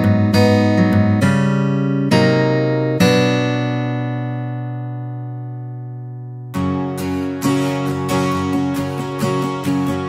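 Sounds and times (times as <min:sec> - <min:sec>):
guitar chord ringing: 0:00.0 - 0:10.0.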